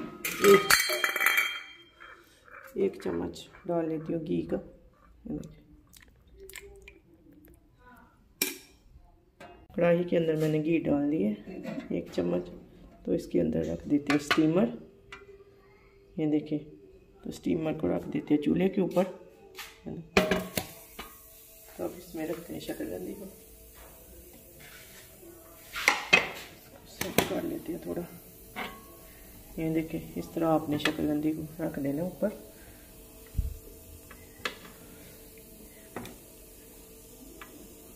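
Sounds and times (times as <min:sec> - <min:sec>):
steel plate clanking in a pan: 0:00.2 - 0:02.6, 0:28.5 - 0:29.2.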